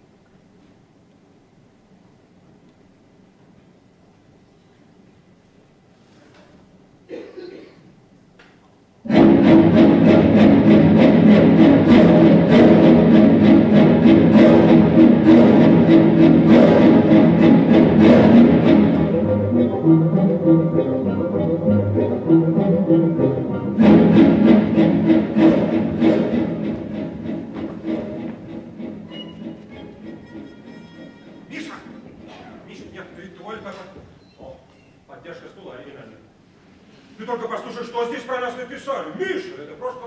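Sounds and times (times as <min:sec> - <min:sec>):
orchestral music with bowed strings: 0:09.1 - 0:32.3.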